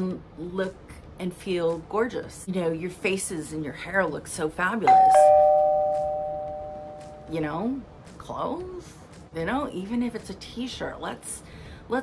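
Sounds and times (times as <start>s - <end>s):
two-note doorbell chime: 4.9s - 7.4s.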